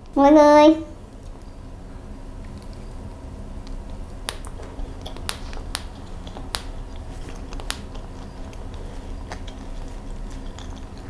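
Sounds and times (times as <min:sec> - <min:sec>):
chewing food: 0:02.4 - 0:11.0
wet mouth clicks: 0:03.7 - 0:11.0.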